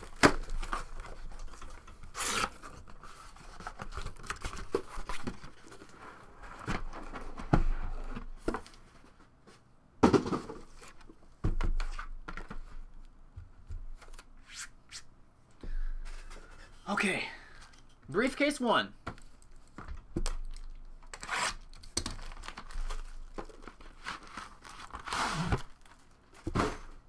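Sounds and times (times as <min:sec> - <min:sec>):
cardboard tearing: 0:02.1 - 0:02.8, 0:21.1 - 0:23.1, 0:23.8 - 0:26.1
plastic wrapping rustling: 0:21.9 - 0:26.5.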